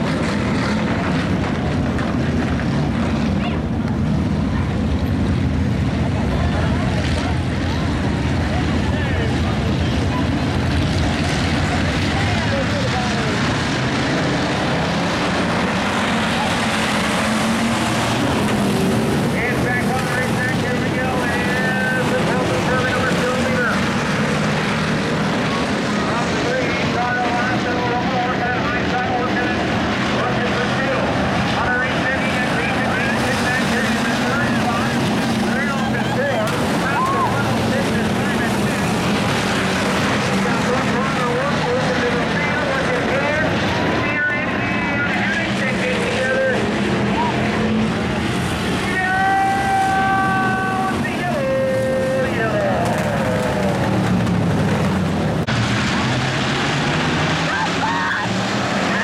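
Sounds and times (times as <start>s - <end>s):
stock car engines racing: 0.0s - 59.0s.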